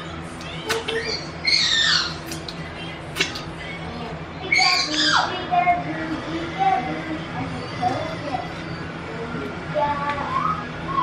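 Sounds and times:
high-pitched squealing calls: 0.5s - 2.5s, 4.4s - 5.4s.

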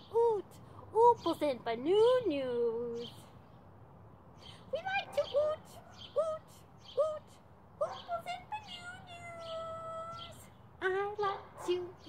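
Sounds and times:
woman speaking high-pitched: 0.0s - 3.1s, 4.7s - 12.0s.

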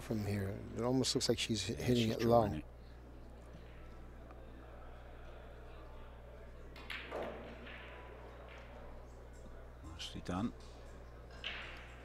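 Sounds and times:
faint knocks of rolling balls: 6.7s - 9.7s, 10.6s - 12.0s
pool balls knocking: 6.8s - 9.0s, 11.4s - 12.0s.

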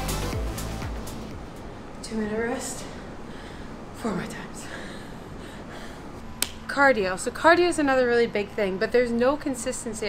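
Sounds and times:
low background hiss: 0.0s - 10.0s
woman's voice: 2.0s - 3.2s, 4.0s - 5.0s, 6.7s - 10.0s.

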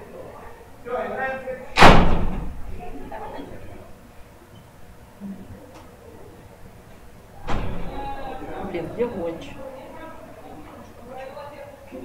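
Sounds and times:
door slamming shut: 1.8s - 2.6s, 7.4s - 8.2s.

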